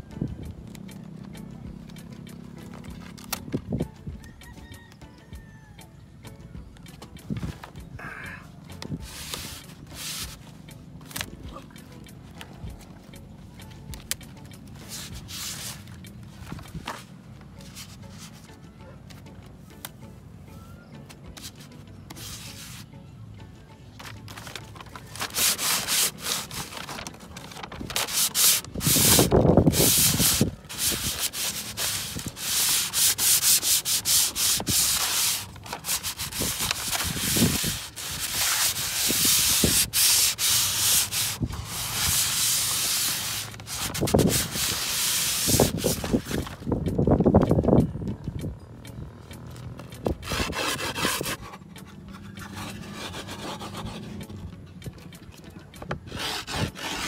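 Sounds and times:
grip tape rasping: 24.0 - 47.8, 49.3 - 54.4, 55.8 - 57.0.

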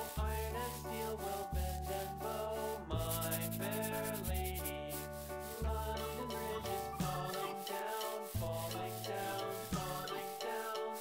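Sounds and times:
instrumental background music: 0.0 - 11.0
marker rubbing on foam ball: 0.0 - 11.0.

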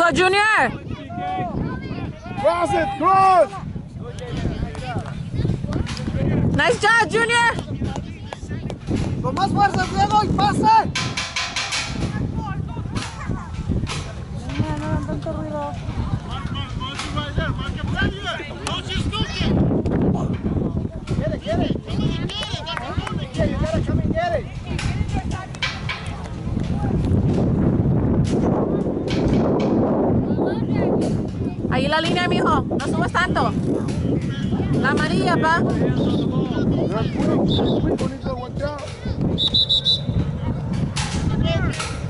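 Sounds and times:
wind buffeting microphone: 0.0 - 42.0
faint voices shouting: 0.5 - 3.8
faint voices calling: 33.1 - 42.0.

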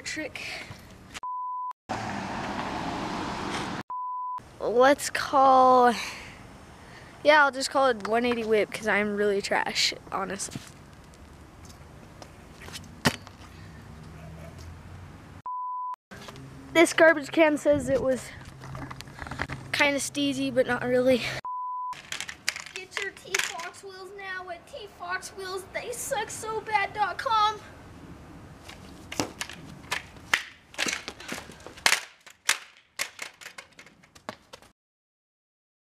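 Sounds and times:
scooter landing clack: 12.7 - 13.4, 28.7 - 34.6
scooter wheels rumbling on concrete: 16.2 - 21.3, 22.0 - 27.5, 28.6 - 34.7.

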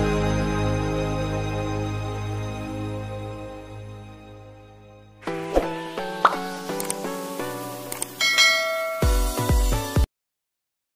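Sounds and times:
popping clicks: 6.2 - 7.0
chiming music jingle: 8.2 - 9.6.

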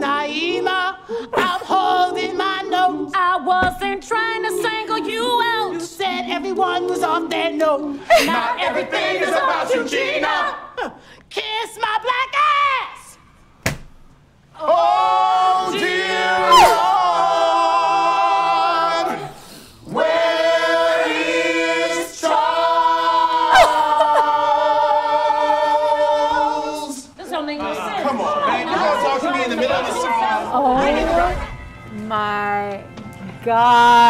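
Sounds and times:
gospel choir singing a cappella: 0.0 - 11.0, 14.5 - 32.2.

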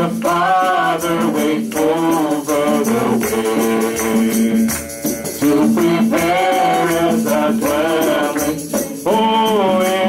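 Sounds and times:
hand percussion shaking: 0.0 - 10.0
people singing: 0.0 - 10.0
keyboard chords: 2.5 - 9.0.

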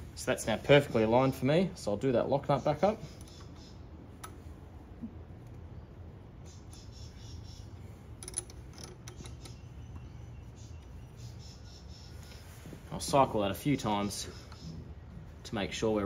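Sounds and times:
low steady hum: 0.0 - 16.0
spanner metallic clicks: 8.1 - 10.1.

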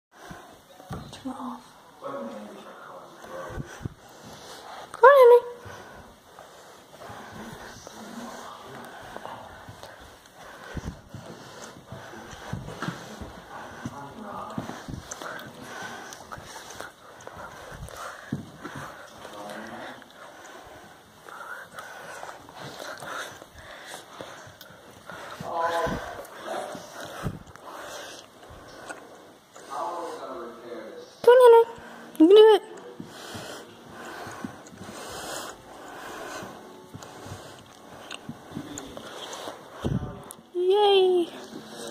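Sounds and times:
dog paws thumping on carpeted stairs: 9.2 - 15.6, 17.3 - 19.2.

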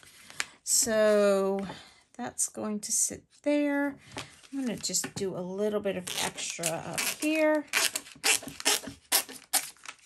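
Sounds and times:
scissors cutting plastic packaging: 6.0 - 10.0.

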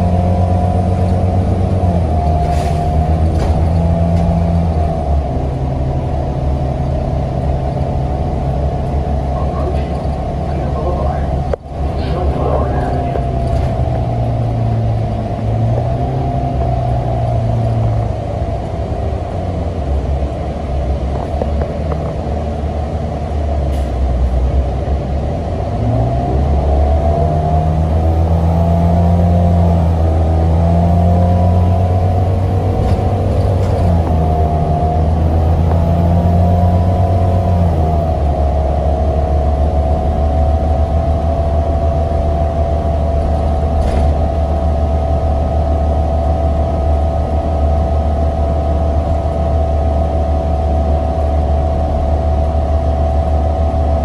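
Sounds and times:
bus engine accelerating: 0.0 - 54.0
road rumble: 0.0 - 54.0.

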